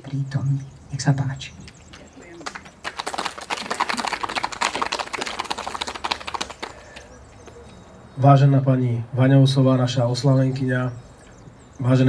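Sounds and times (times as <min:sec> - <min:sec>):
small audience clapping: 0:01.9 - 0:07.2.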